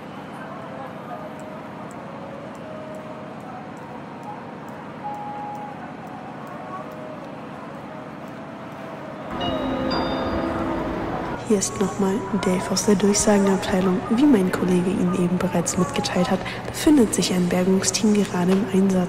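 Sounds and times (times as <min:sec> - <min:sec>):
steady background hiss: 0:00.0 - 0:19.0
several held tones: 0:09.3 - 0:11.4.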